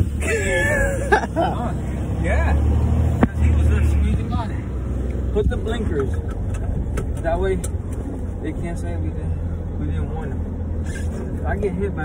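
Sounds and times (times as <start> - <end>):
truck engine rumbling: 0.0 - 12.0
laughter and voice: 0.2 - 1.8.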